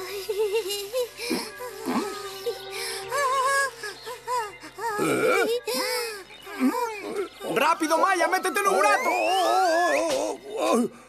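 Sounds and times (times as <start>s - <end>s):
cartoon music: 6.6s - 10.4s.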